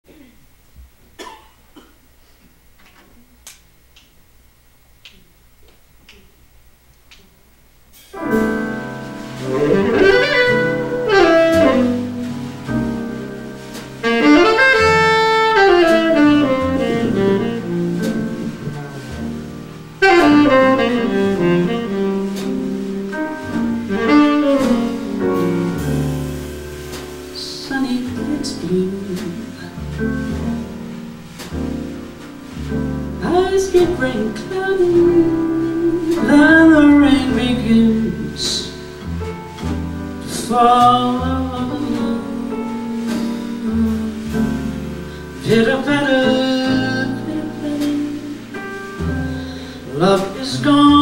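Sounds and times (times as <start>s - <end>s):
person coughing: 0.1s - 0.4s, 1.2s - 2.0s
drums: 7.8s - 51.0s
double bass: 8.0s - 51.0s
piano: 8.0s - 51.0s
saxophone phrases: 8.2s - 39.6s.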